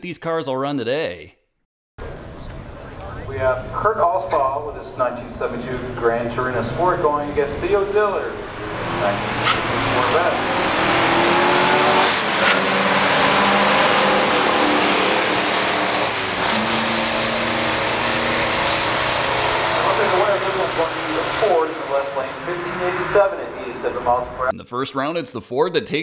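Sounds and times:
car engines accelerating hard: 2.2s - 24.5s.

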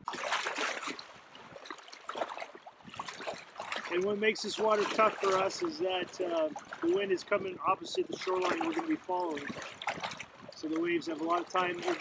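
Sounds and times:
lake waves splashing at shore: 0.0s - 12.0s.

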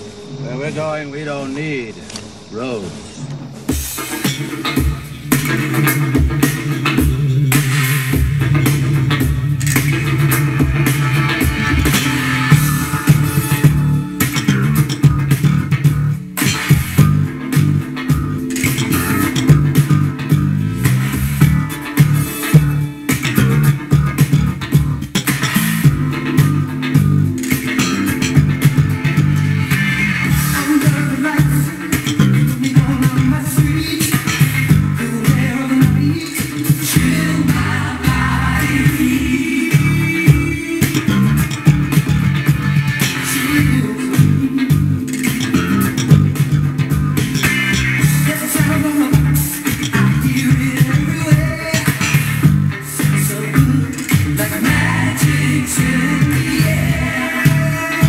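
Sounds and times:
funk backing track: 0.0s - 58.0s
slap bass funk line: 3.7s - 58.0s.

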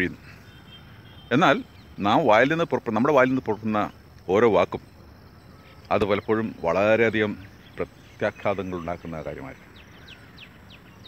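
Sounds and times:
man speaking: 1.3s - 5.0s, 5.7s - 9.6s.

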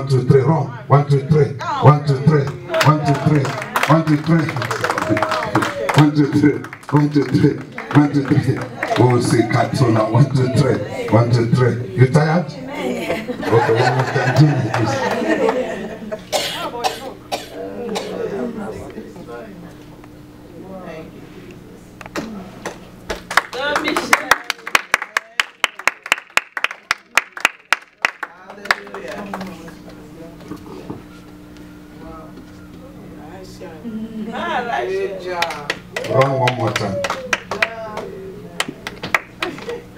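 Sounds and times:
congregation voices: 0.0s - 23.0s, 28.2s - 39.9s
hand claps: 2.4s - 9.2s, 22.6s - 30.0s, 35.4s - 39.8s
person coughing: 16.3s - 18.4s.

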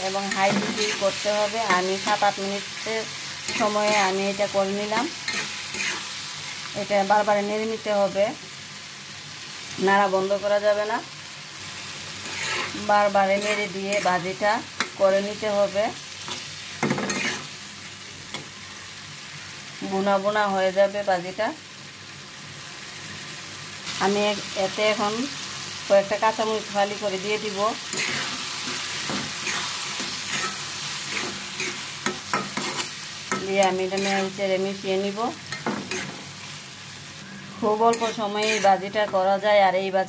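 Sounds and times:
vegetables sizzling in oil: 0.0s - 40.0s
metal spatula scraping a pan: 3.4s - 6.7s, 12.2s - 15.0s, 16.3s - 17.6s, 27.8s - 34.4s, 35.5s - 36.4s, 37.9s - 39.3s.

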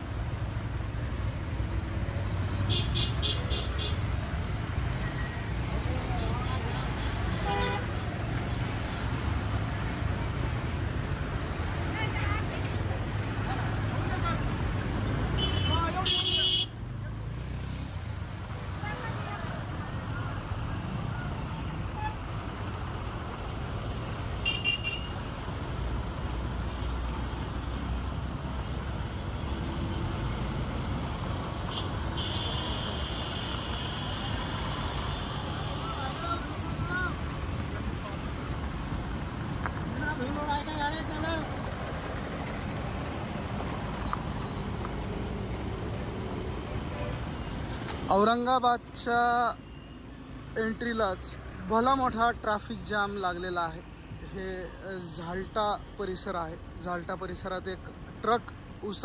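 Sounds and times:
vehicle horns honking: 2.7s - 4.0s, 7.0s - 8.0s, 15.1s - 16.8s, 21.9s - 22.2s, 24.4s - 25.2s, 31.6s - 36.1s.

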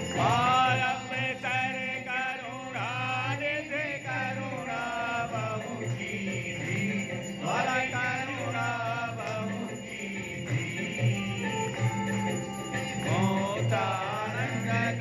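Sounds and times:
devotional vocal chant: 0.0s - 15.0s.

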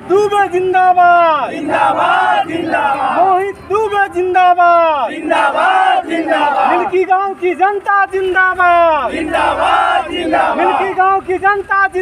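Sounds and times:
men chanting slogans: 0.5s - 12.0s.

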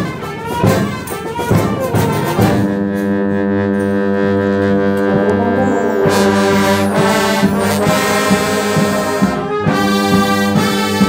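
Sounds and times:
brass band playing chords: 0.0s - 11.0s
percussive accents: 4.4s - 9.3s.

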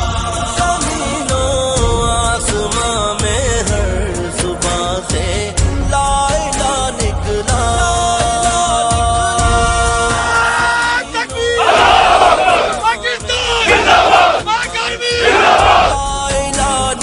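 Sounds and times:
backing music with held notes: 0.1s - 17.0s
men shouting in unison: 9.6s - 16.0s.

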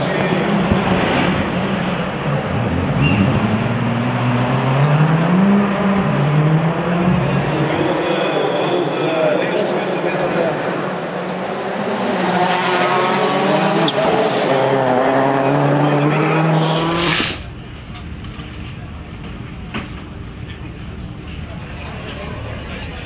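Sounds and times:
rally car engine revving: 0.0s - 17.4s.

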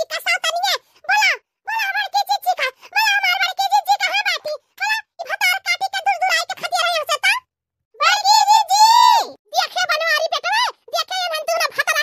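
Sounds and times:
high-pitched cartoon voice talking: 0.0s - 12.0s.

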